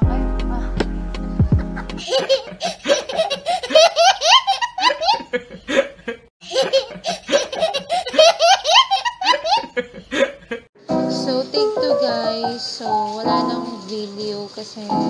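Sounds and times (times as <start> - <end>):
child laughing: 1.6 - 10.3.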